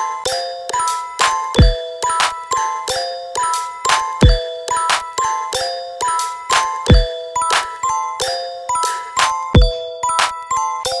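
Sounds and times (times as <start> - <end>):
deep kick drum: 4.2 - 4.4, 9.6 - 9.8
electronic house beat: 6.6 - 7.8.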